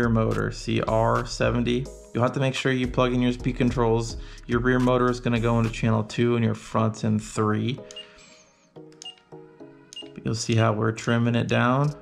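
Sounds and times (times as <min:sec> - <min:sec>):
radio transmitter high beeps: 0:07.9 - 0:08.2.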